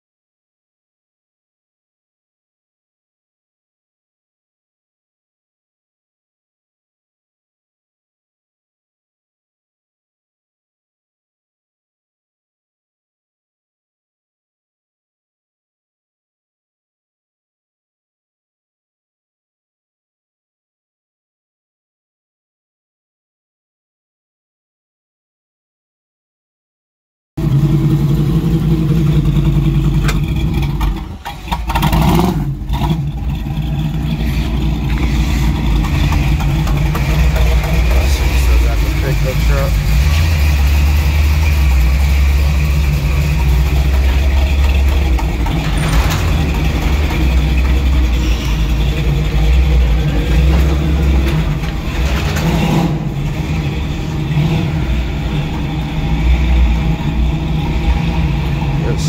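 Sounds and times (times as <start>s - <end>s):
car engine running loudly: 27.4s - 59.0s.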